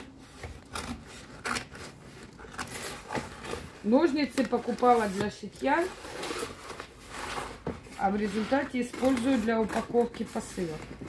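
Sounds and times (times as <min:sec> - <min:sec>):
scissors cutting cardboard: 0:00.0 - 0:11.0.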